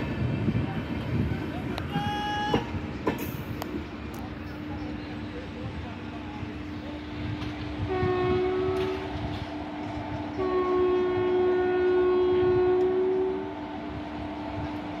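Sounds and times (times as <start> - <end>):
train hum and rumble: 0.0 - 15.0
train horn blasts: 1.9 - 2.8, 7.8 - 9.5, 10.3 - 13.7.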